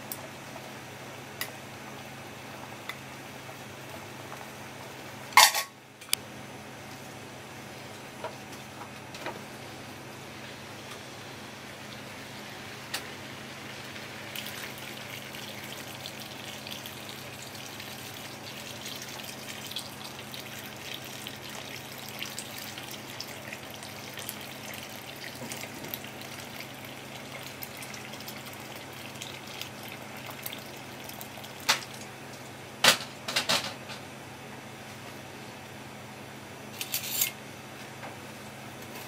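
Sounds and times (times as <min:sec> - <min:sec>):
tap water splashing into pot: 0:17.8 - 0:32.4.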